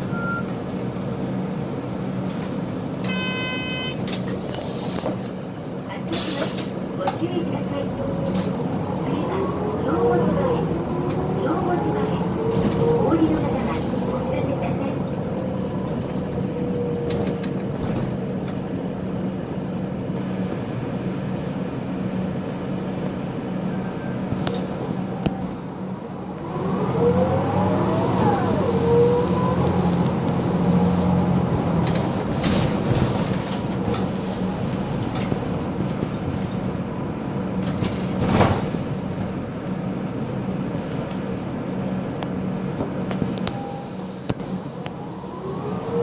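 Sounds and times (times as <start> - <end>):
bus engine hum: 0.0 - 46.0
short electronic beep: 0.1 - 0.5, 3.1 - 4.0.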